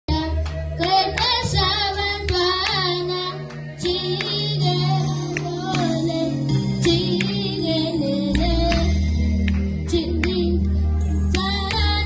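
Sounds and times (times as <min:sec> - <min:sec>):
children's choir singing: 0:00.8 - 0:08.9.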